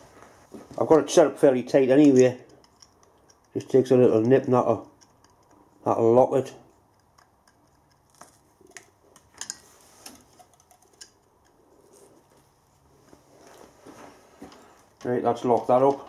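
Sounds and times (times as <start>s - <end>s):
faint metallic clicks and taps: 1.7s - 6.1s, 6.7s - 16.0s.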